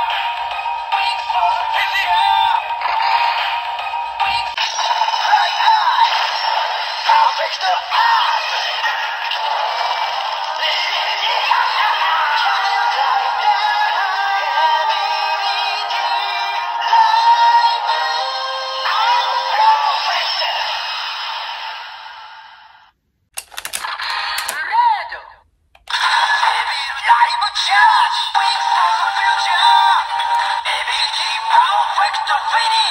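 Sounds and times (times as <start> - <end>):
toy speaker synthesized song: 0.0 - 20.7, 25.9 - 32.9
clicks: 23.3 - 24.6.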